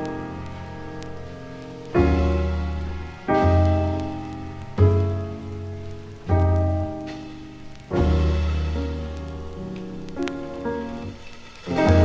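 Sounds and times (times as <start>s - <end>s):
jazz piano chords with bass: 0.0s - 12.0s
vinyl record crackle: 0.0s - 12.0s.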